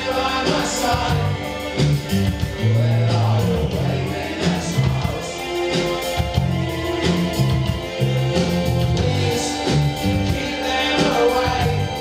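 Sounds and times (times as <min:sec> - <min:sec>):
drum beats: 0:00.0 - 0:12.0
lead vocal singing: 0:00.0 - 0:12.0
live synth-rock band: 0:00.0 - 0:12.0
pulsing bass notes: 0:00.0 - 0:12.0.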